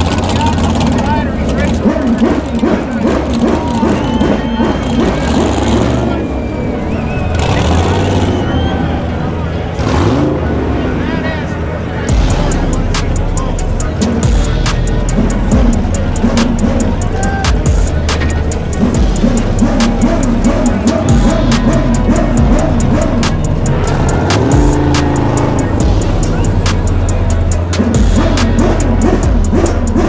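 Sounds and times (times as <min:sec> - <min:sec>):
music with heavy bass beat: 0:00.0 - 0:09.0, 0:11.6 - 0:30.0
car engines running: 0:00.0 - 0:30.0
indistinct voices: 0:00.0 - 0:30.0.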